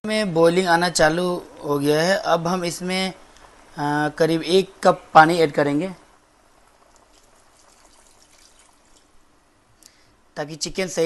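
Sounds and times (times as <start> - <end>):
water trickling into pot: 6.4 - 9.3.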